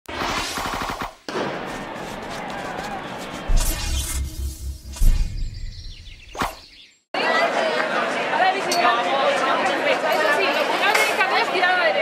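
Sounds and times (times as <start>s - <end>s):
heavy hit: 1.3s - 6.3s
crash-like sound effects: 1.3s - 6.6s
deep booming pulses: 2.9s - 6.7s.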